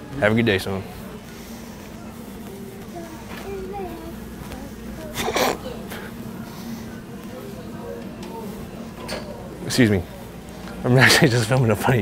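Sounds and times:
indistinct shopper voices: 0.0s - 12.0s.

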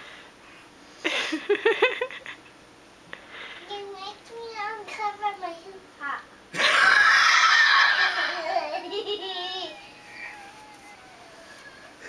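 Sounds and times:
child squealing: 6.7s - 8.7s, 9.5s - 12.0s.

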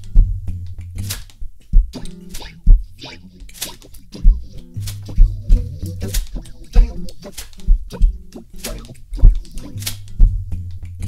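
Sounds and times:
electronic drum beat: 1.4s - 10.6s
synth bass note: 4.1s - 10.6s.

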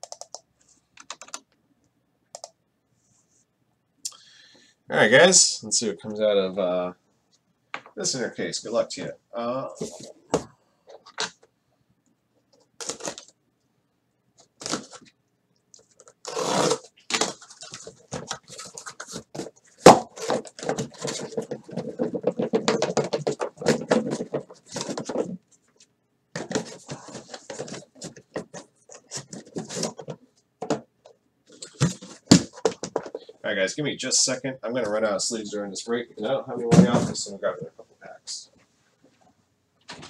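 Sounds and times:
cardboard rustling and scraping: 9.7s - 11.4s, 16.0s - 25.5s, 26.4s - 30.9s, 31.5s - 33.4s
tape tearing: 12.8s - 13.3s, 14.5s - 15.1s, 15.9s - 21.4s
boxes set down with knocks: 17.1s - 25.4s, 31.6s - 33.2s, 36.6s - 37.3s.

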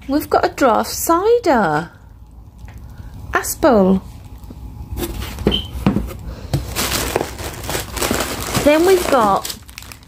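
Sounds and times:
plastic packaging rustling: 4.0s - 10.0s.

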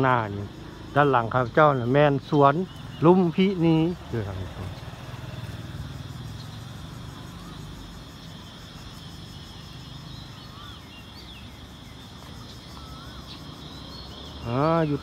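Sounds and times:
city traffic rumble: 0.0s - 15.0s.

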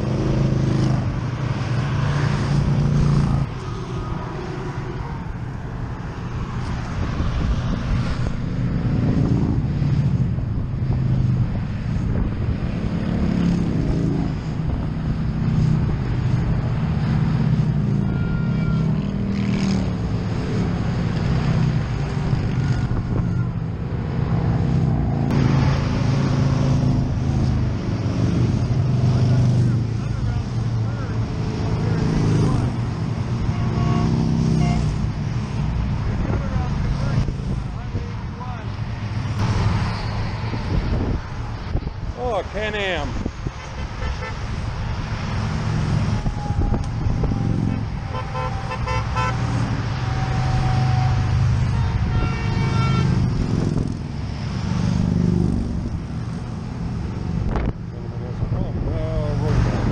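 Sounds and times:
highway traffic rumble: 0.0s - 59.9s.

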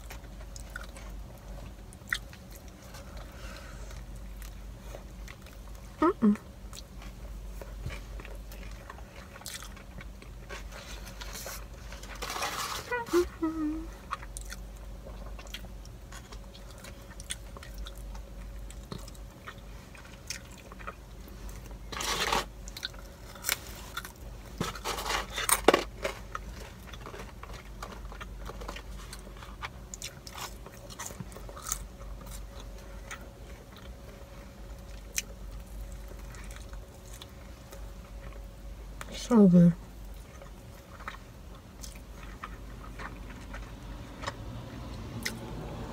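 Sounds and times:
chewing and mouth clicks: 0.0s - 3.3s, 6.7s - 10.7s, 14.0s - 21.8s, 40.0s - 45.5s
steady low hum: 0.0s - 45.9s.

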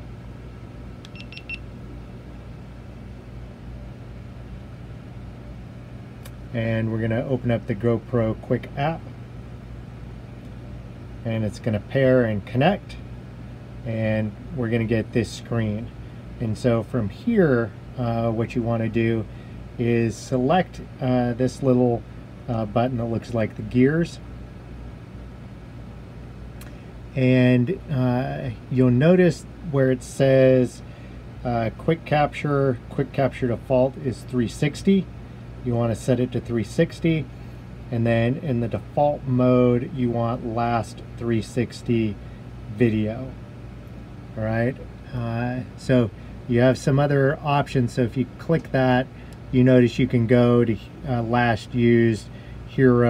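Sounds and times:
low background hum: 0.0s - 53.0s
camera beeping: 1.1s - 1.6s.

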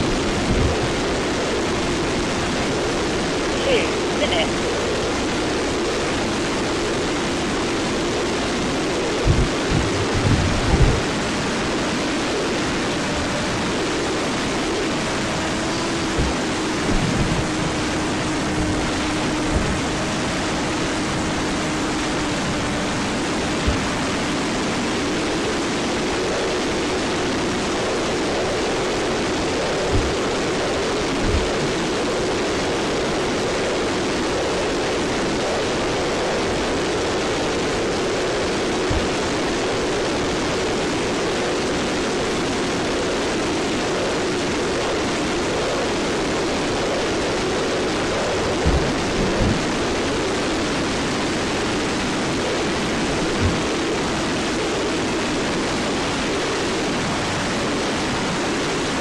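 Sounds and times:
wind thumps on microphone: 0.0s - 2.8s, 9.0s - 13.9s, 14.7s - 25.6s, 27.7s - 41.6s, 46.5s - 55.6s
electric motor and propeller humming: 0.0s - 59.0s
wind noise: 0.0s - 59.0s.

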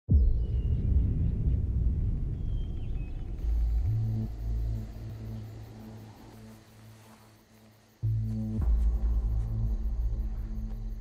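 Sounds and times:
deep low rumble: 0.1s - 6.8s
low synth drone: 0.1s - 7.1s.

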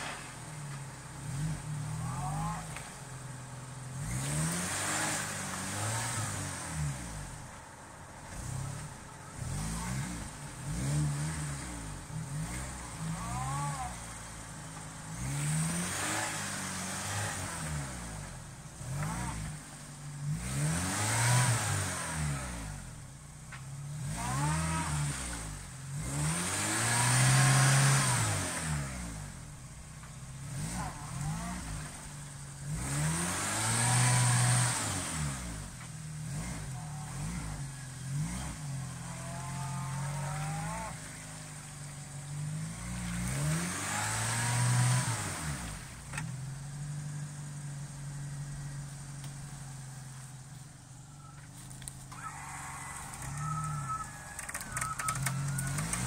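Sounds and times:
engine revving in low gear: 0.0s - 56.0s.

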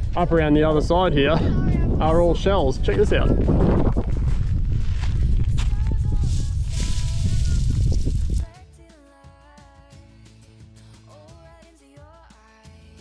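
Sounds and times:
wind buffeting microphone: 0.0s - 8.5s.

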